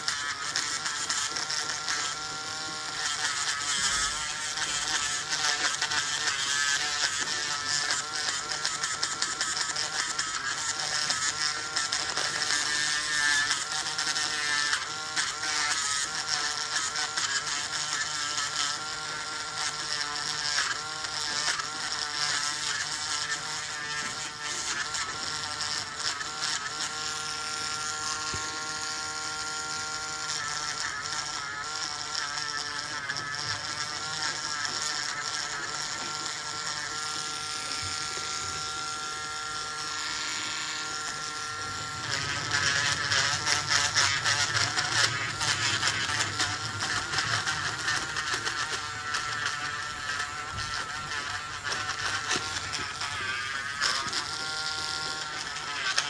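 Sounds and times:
rotary nail drill whining: 0:00.0 - 0:56.0.

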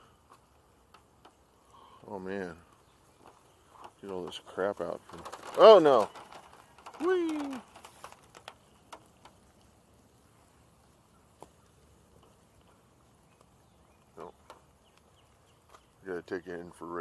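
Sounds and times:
faint ticks: 0:00.0 - 0:16.6
light sharp clicks and taps: 0:00.2 - 0:10.1, 0:11.3 - 0:16.0
short murmur: 0:06.9 - 0:07.8.

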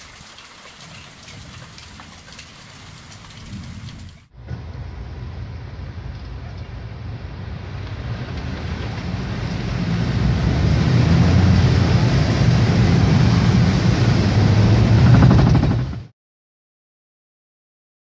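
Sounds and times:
water splashing under car: 0:00.0 - 0:04.3, 0:05.3 - 0:15.2
heavy rain: 0:00.0 - 0:16.0
car engine and road rumble: 0:03.6 - 0:16.1.

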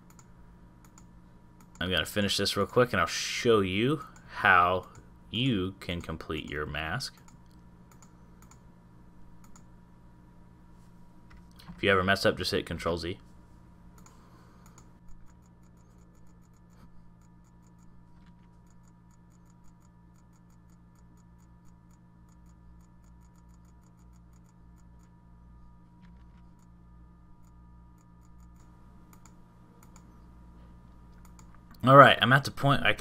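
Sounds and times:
computer mouse clicks: 0:00.0 - 0:01.8, 0:07.1 - 0:08.6, 0:09.4 - 0:09.7, 0:13.9 - 0:25.2, 0:27.4 - 0:30.2, 0:31.1 - 0:31.8
low electrical hum: 0:00.0 - 0:33.0.

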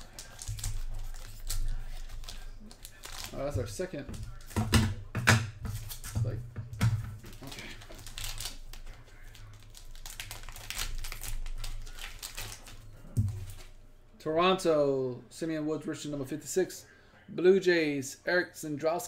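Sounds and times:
plastic wrapping crinkling and tearing: 0:00.0 - 0:05.1, 0:05.7 - 0:13.8.

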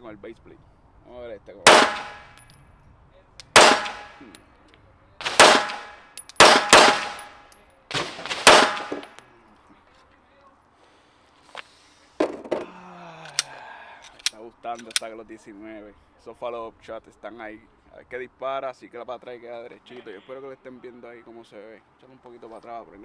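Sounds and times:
pistol shots with ringing tail: 0:01.7 - 0:02.5, 0:03.5 - 0:04.3, 0:05.2 - 0:09.2.

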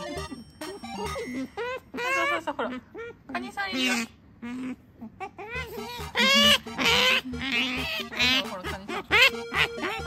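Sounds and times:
otter squeaking: 0:00.0 - 0:10.0.

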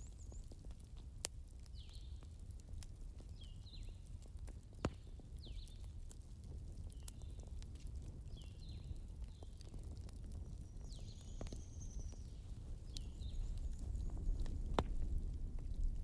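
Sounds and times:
fire pops: 0:00.0 - 0:16.0
wood fire crackling: 0:00.0 - 0:16.0.

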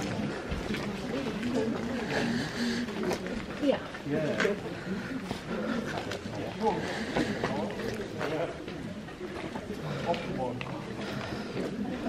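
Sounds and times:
people chatting indistinctly: 0:00.0 - 0:12.0.

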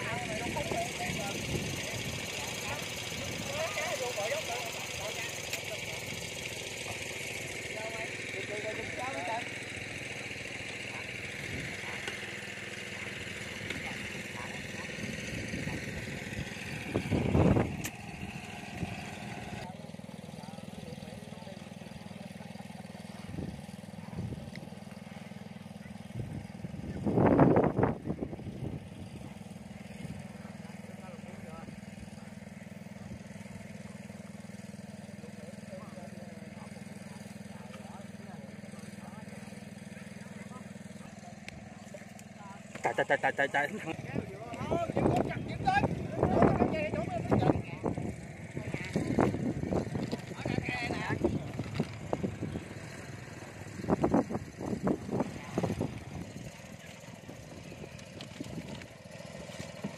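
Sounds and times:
small engine humming: 0:00.0 - 0:59.9.

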